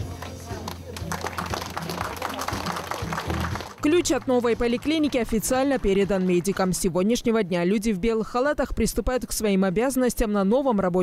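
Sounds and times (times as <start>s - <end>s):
hands clapping: 0.0s - 6.9s.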